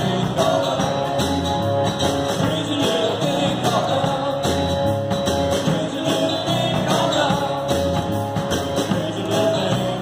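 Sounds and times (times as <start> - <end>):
acoustic guitars strummed: 0.0 - 10.0
drum kit steady beat: 0.0 - 10.0.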